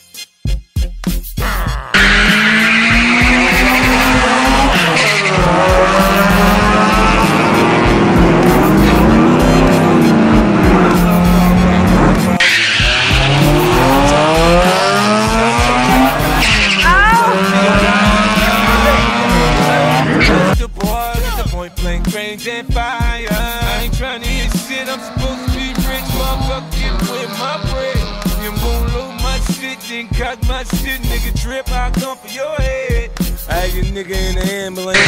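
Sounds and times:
music: 0.0 - 35.0
racing car engines revving: 1.8 - 20.6, 23.0 - 32.5.

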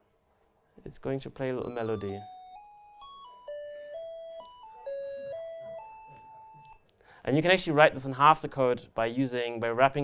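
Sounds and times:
square-wave beep melody: 1.6 - 6.8.

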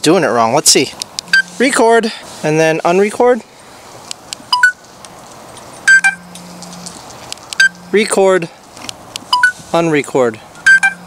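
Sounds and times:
camera beeping: 1.2 - 1.6, 4.5 - 4.8, 5.8 - 6.5, 7.5 - 7.8, 9.3 - 9.6, 10.6 - 11.0.

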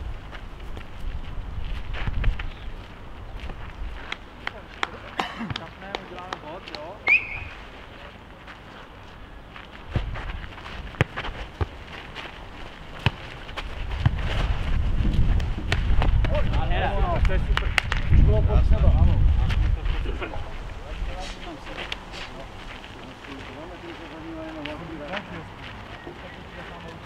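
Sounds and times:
wind rumbling on microphone: 0.0 - 4.4, 12.4 - 23.0
players' voices: 4.2 - 9.3, 15.7 - 27.0.

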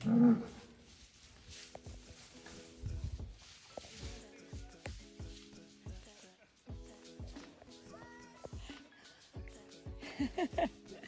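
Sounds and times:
bull bellowing: 0.0 - 0.8.

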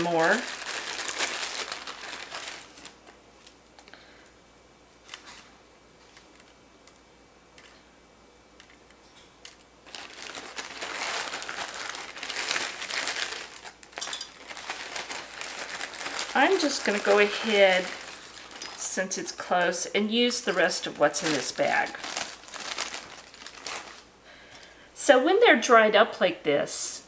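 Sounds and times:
plastic bag crinkling: 0.0 - 4.2, 5.0 - 7.0, 9.5 - 24.1.

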